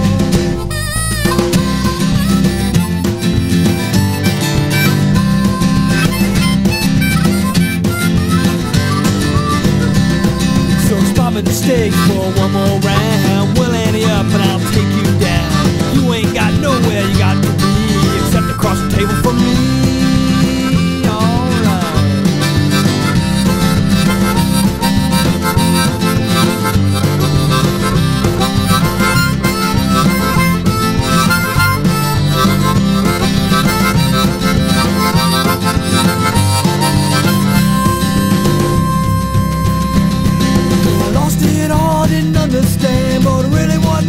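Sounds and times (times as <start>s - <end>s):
lead instrument solo with bent notes: 0.0s - 42.0s
rock band playing: 0.0s - 44.0s.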